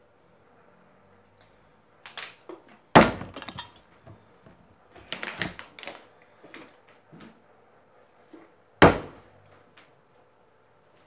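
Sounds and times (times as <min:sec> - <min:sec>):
plastic bottle hitting floor: 0:03.0 - 0:03.8, 0:08.8 - 0:09.2
bottle clattering: 0:03.1 - 0:03.9.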